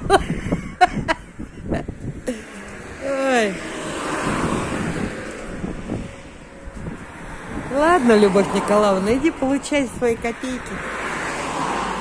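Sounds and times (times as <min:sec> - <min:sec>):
wind on microphone: 0:00.0 - 0:12.0
vehicle passing on road: 0:00.3 - 0:12.0.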